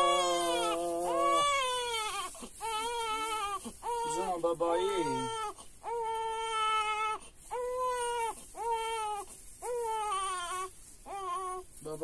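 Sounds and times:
newborn baby crying: 0.0s - 11.7s.

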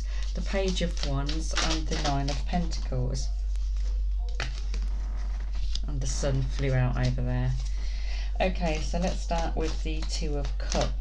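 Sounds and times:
cards being shuffled: 0.0s - 11.0s
steady low hum: 0.0s - 11.0s.

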